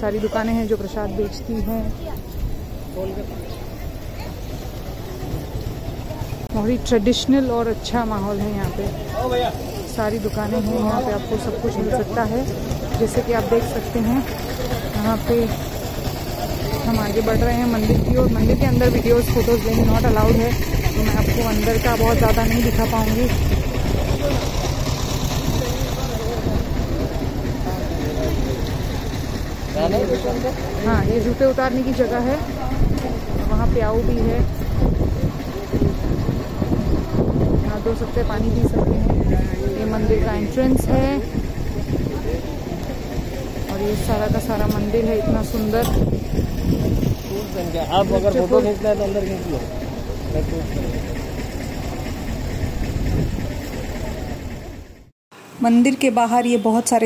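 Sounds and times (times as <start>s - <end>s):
faint voices of people: 0.0s - 31.3s, 31.9s - 55.1s.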